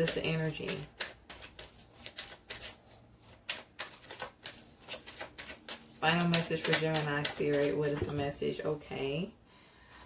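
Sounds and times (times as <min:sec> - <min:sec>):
cards being shuffled by hand: 0:00.0 - 0:08.1.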